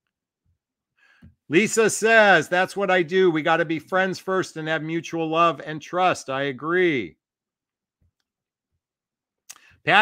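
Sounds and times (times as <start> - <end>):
man speaking: 1.5 - 7.2, 9.8 - 10.0.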